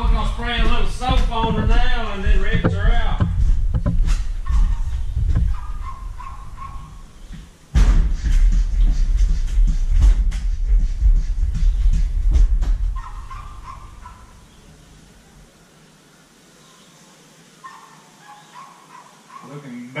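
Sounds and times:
garden sprayer pump thumps: 0.0 - 13.0.

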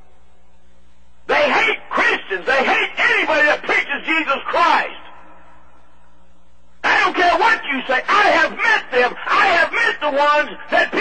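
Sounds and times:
background hum and hiss: 0.0 - 11.0
man speaking: 1.3 - 5.2, 6.8 - 11.0.

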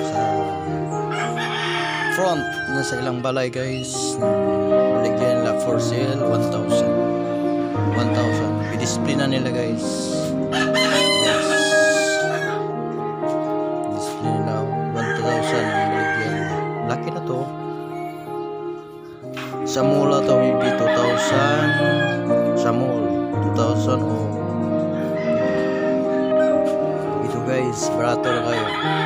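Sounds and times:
rooster crowing: 0.0 - 3.2, 10.5 - 12.7, 15.0 - 16.8, 20.6 - 22.3, 24.9 - 26.7, 28.2 - 29.0
background music with held notes: 0.0 - 29.0.

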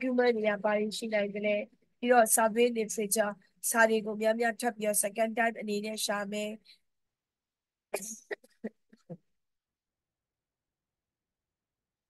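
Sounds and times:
woman coughing: 8.0 - 8.8.

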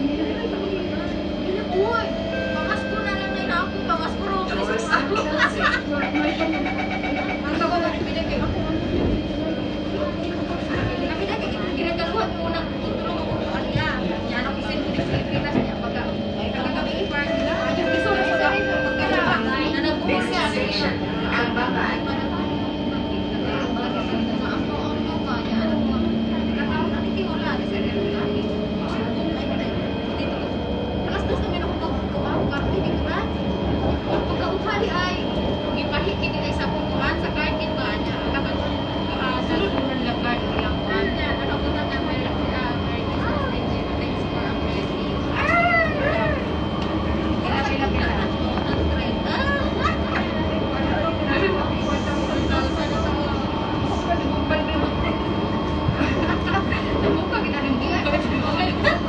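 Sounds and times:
train electric whine and hum: 0.0 - 59.0
wheels rumbling on rails: 0.0 - 59.0.

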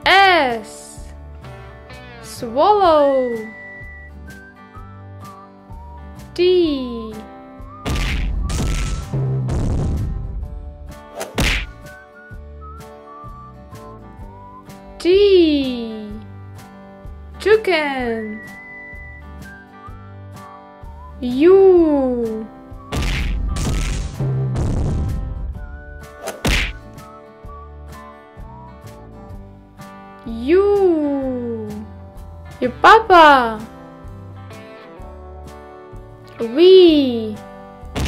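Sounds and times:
quiet background music: 0.0 - 38.0
cartoon whack: 7.8 - 10.1, 11.2 - 11.9, 22.9 - 25.2, 26.2 - 26.8.

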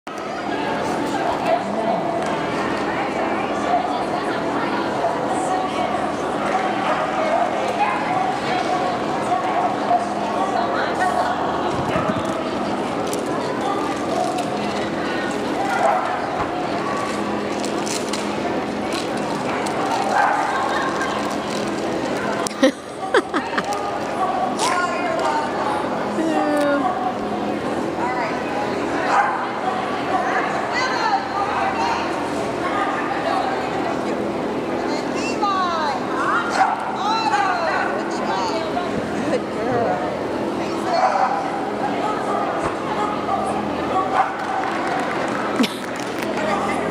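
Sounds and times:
people chattering in a hall: 0.1 - 46.9.

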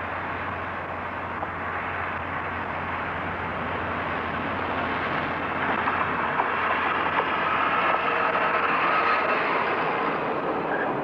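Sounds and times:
diesel locomotive rumbling past: 0.0 - 11.0.

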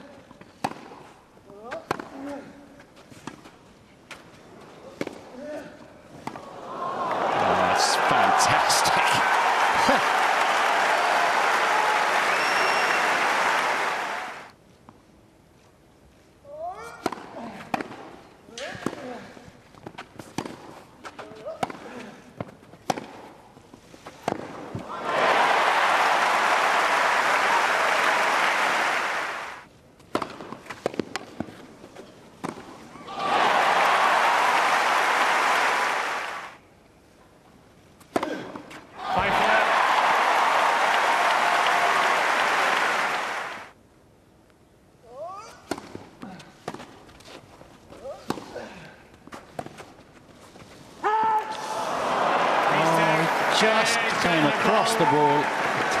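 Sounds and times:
tennis balls struck by rackets: 0.6 - 1.1, 19.8 - 23.4, 24.2 - 24.8, 30.0 - 31.6, 45.6 - 47.0
crowd applauding: 6.7 - 14.5, 24.9 - 29.6, 33.1 - 36.6, 39.1 - 43.7, 51.8 - 56.0.

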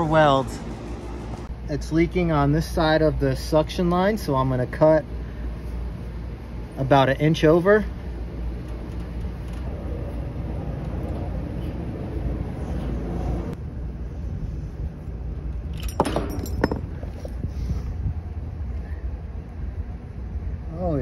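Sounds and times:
sharp metallic clinks: 15.7 - 17.2.

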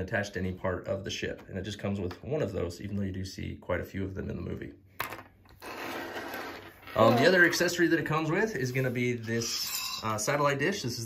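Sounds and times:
plastic parts scraping on table: 5.0 - 7.7.

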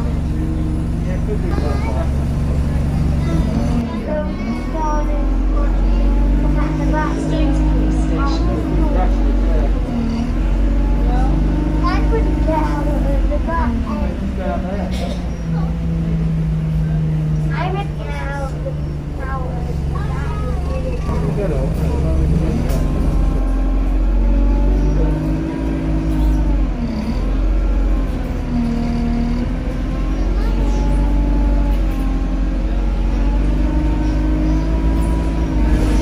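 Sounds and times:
bus engine under load: 0.0 - 36.0
indistinct voices: 0.0 - 36.0.

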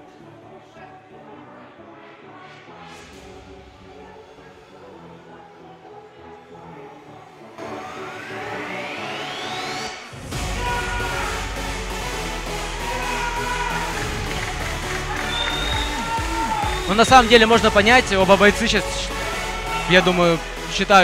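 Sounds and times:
electronic music: 1.9 - 21.0.

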